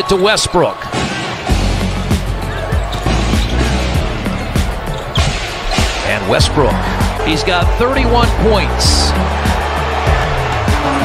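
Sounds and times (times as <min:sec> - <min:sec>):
background music with bass: 0:01.5 - 0:11.0.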